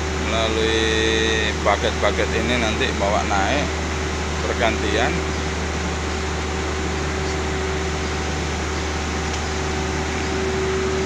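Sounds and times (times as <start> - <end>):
processing machinery droning: 0.0 - 11.0.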